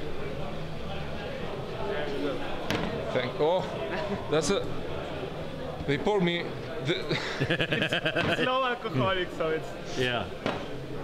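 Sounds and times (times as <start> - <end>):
people talking: 0.0 - 10.4.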